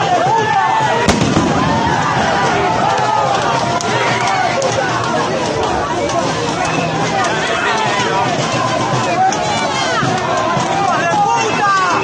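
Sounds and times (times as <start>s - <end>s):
protesters shouting: 0.0s - 12.0s
sharp bang: 1.0s - 2.7s.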